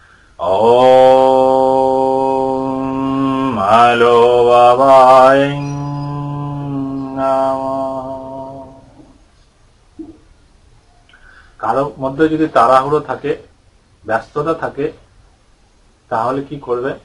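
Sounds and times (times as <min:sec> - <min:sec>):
man chanting: 0:00.4 - 0:09.2, 0:11.6 - 0:15.0, 0:16.1 - 0:17.0.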